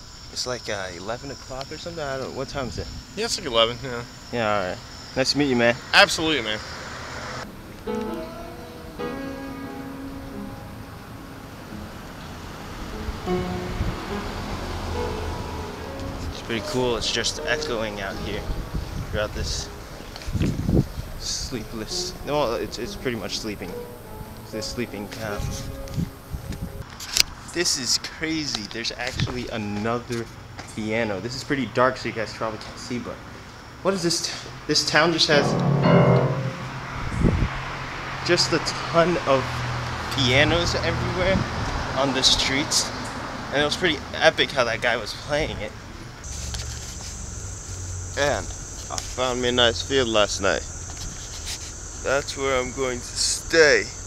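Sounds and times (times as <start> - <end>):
background traffic: 0.0 - 35.4, 36.9 - 54.0
piano notes echoing: 7.4 - 20.1, 21.2 - 26.8, 35.3 - 37.6
short low thump: 35.3 - 37.5.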